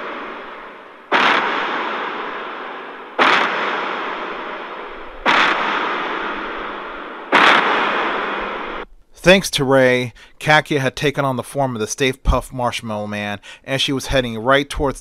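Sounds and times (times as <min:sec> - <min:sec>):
giant footsteps booming: 0:00.0 - 0:08.9.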